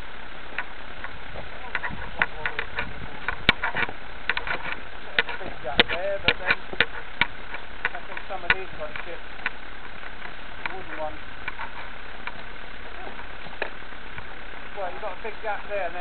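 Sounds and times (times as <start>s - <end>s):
steady hiss: 0.0s - 16.0s
sharp clicks and knocks: 0.5s - 12.5s.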